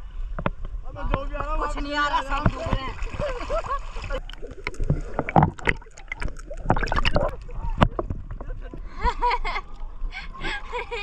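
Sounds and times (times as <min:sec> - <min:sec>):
river water splashing: 0:01.9 - 0:08.2.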